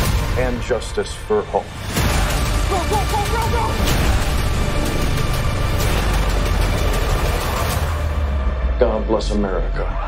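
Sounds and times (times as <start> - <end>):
helicopter rotor and engine rumble: 1.8 - 8.4.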